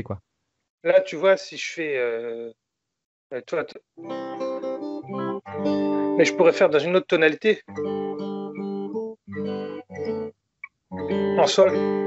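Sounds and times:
fingerstyle acoustic guitar: 0:07.7 - 0:10.3, 0:10.9 - 0:12.0.

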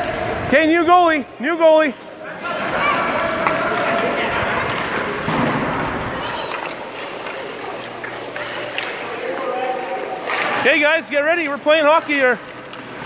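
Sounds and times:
children chattering: 0:05.8 - 0:10.2
skate blades scraping ice: 0:06.1 - 0:10.7.

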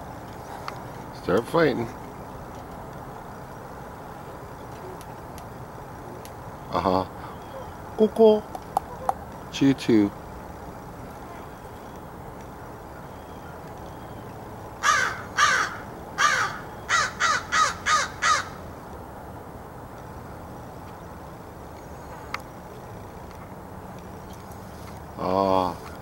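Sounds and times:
crow cawing: 0:14.8 - 0:18.6.

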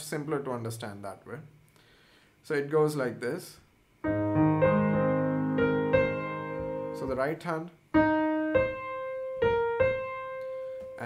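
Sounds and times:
slow piano arpeggio and melody: 0:04.0 - 0:07.1, 0:07.9 - 0:11.0.

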